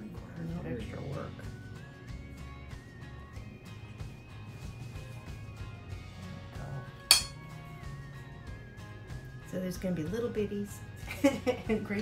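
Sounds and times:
background music: 0.0s - 12.0s
metal baking sheet clink: 7.1s - 7.4s.

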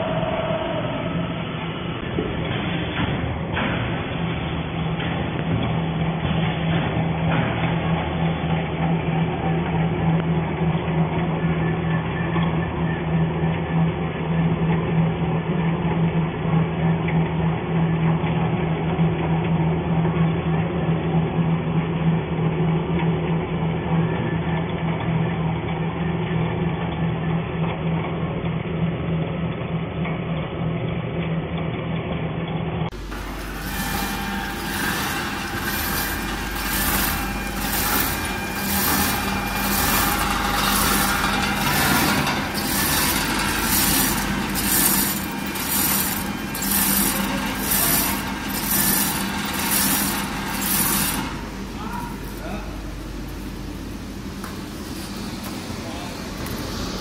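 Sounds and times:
conveyor motor hum: 0.0s - 57.0s
machine whine with hissing pulse: 32.9s - 57.0s.

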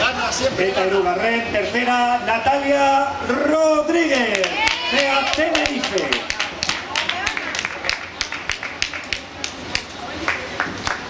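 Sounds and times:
murmur of voices: 0.0s - 11.0s
hand clapping: 4.3s - 11.0s.

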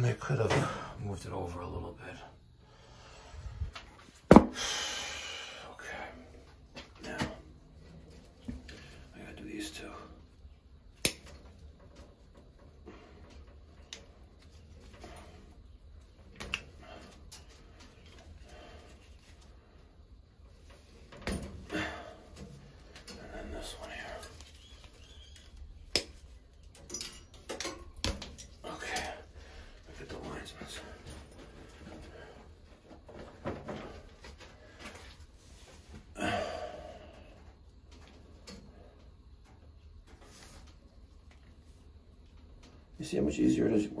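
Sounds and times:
wires rustling: 10.3s - 36.1s
wire stripper clicking and snipping: 11.0s - 11.4s.

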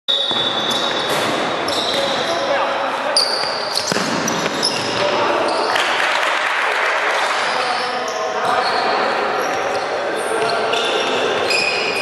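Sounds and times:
shoe squeaks: 0.1s - 5.7s, 7.4s - 12.0s.

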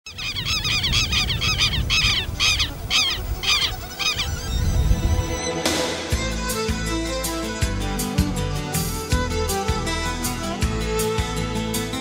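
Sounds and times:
bird honking calls: 0.1s - 5.4s
music: 1.6s - 12.0s
rising whoosh: 4.3s - 7.6s.

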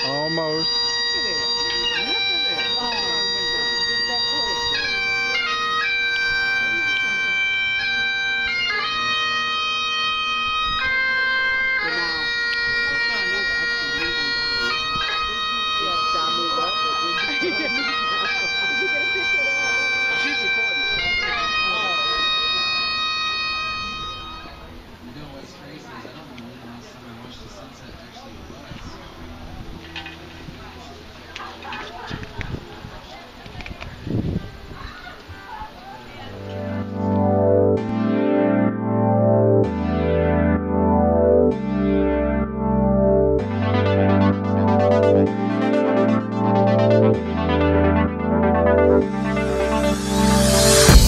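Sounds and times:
bagpipes playing slow melody: 0.0s - 24.7s, 36.3s - 51.0s.

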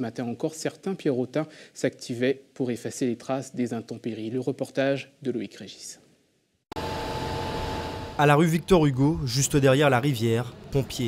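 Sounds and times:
fire engine mechanical hum: 6.7s - 11.0s.

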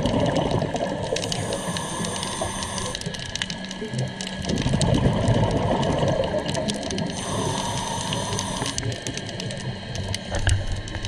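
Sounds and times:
exhaled bubbles burbling: 0.0s - 11.0s
small clicks and crackles: 0.0s - 11.0s
hissing inhale through regulator: 1.0s - 3.6s, 6.9s - 9.3s.

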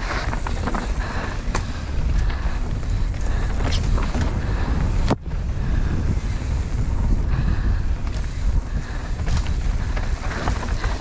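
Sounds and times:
tyres rumbling on dirt: 0.0s - 5.1s, 7.2s - 11.0s
bike clattering and knocking: 0.0s - 5.2s
wind buffeting microphone: 0.0s - 11.0s.

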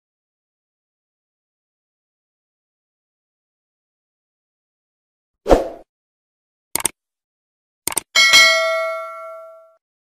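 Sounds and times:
double mouse click: 6.8s - 7.0s, 7.9s - 8.1s
bell-like ding: 8.2s - 9.8s.

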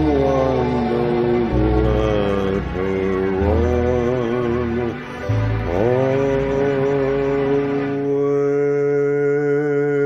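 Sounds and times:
backing track chord: 0.0s - 9.9s
elderly man singing: 0.0s - 10.0s.

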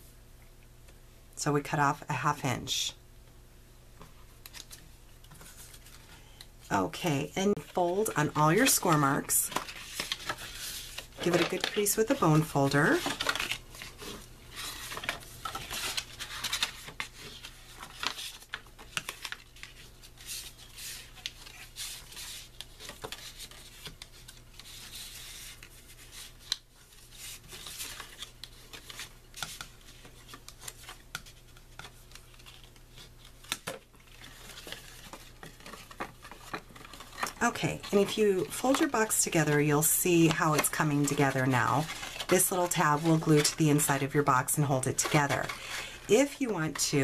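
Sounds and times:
crisp clicks of paper folds: 4.0s - 6.5s, 7.4s - 44.2s
paper rustle: 4.5s - 6.5s, 7.2s - 47.0s.

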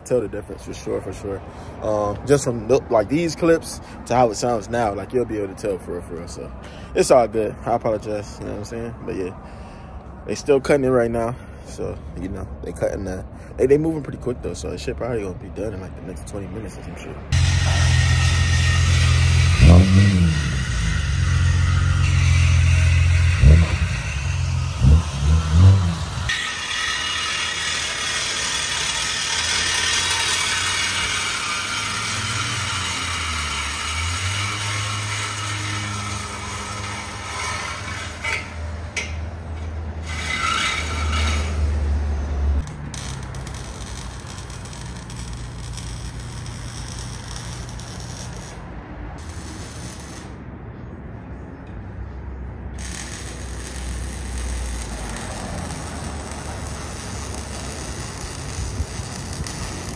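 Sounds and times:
tools hissing and scraping: 17.3s - 39.2s, 40.0s - 48.6s, 49.2s - 50.4s, 52.8s - 59.9s
car engine revving: 17.4s - 26.4s.

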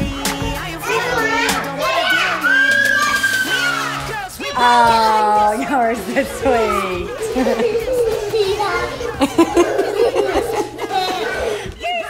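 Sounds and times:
background music with bass: 0.0s - 2.6s
toddlers babbling and squealing: 0.0s - 12.0s.

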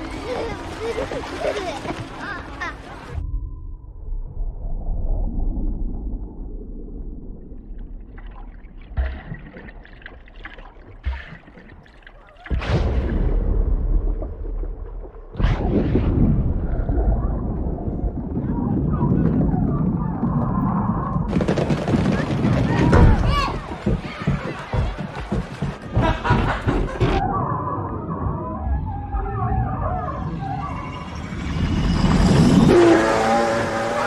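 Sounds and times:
beach crowd noise: 0.0s - 3.2s, 17.3s - 27.2s
heavy low water churning: 0.0s - 34.0s.

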